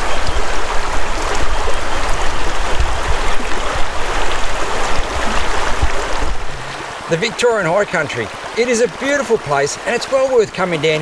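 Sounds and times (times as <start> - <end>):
creek rushing over rocks: 0.0 - 11.0.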